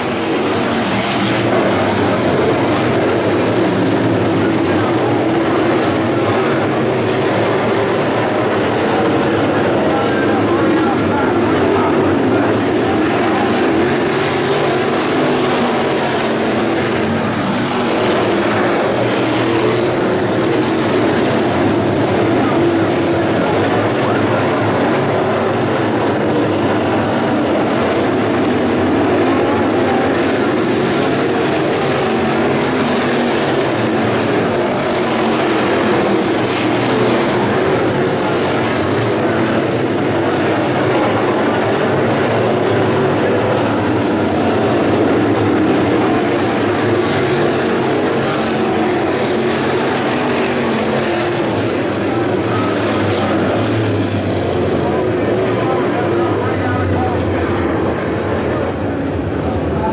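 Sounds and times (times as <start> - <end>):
race car engines: 0.0 - 59.9.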